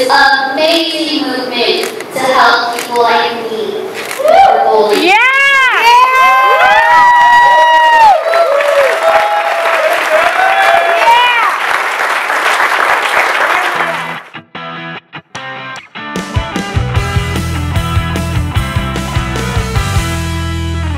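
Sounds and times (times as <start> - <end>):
audience cheering and applause: 4.1 - 14.4.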